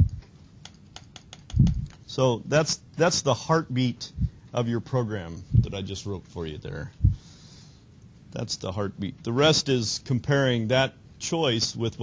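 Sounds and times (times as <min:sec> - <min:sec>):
computer keyboard clicks: 0:00.1 - 0:02.0.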